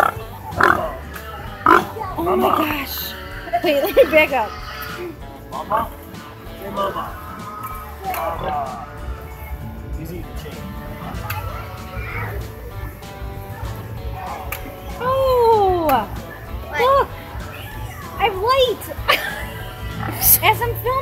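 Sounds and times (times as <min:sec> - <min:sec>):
pig squealing: 0:00.0 - 0:09.8, 0:10.8 - 0:18.4, 0:19.5 - 0:20.4
background music: 0:00.0 - 0:21.0.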